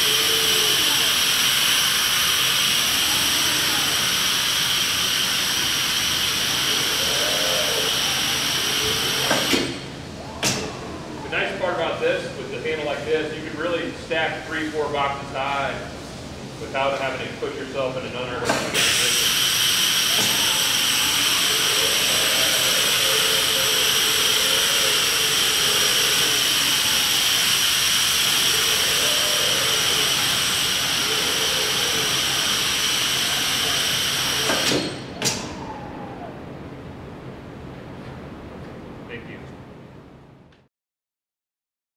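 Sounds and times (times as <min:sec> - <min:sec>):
vacuum generator hissing and whining: 0:00.0 - 0:40.4.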